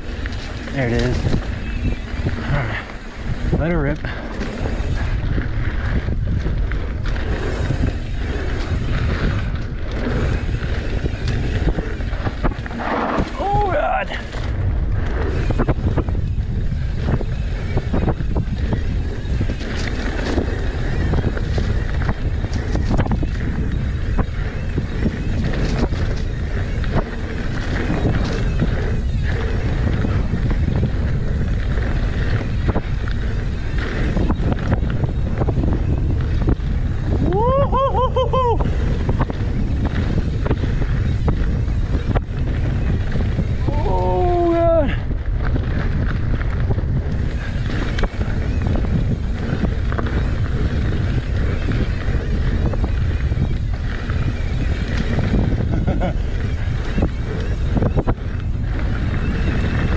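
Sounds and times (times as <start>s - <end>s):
bike rattling: 0.0s - 59.9s
bike tyres rumbling on dirt: 0.0s - 59.9s
wind buffeting microphone: 0.0s - 59.9s.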